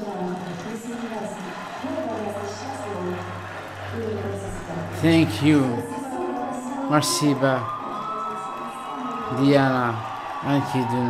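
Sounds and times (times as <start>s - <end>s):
woman speaking into microphone: 0.0s - 3.3s, 3.9s - 9.2s.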